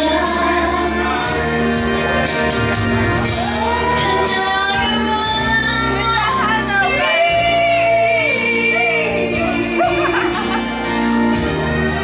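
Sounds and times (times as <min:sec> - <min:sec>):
instrumental backing: 0:00.0 - 0:12.0
woman singing country song: 0:04.0 - 0:10.5.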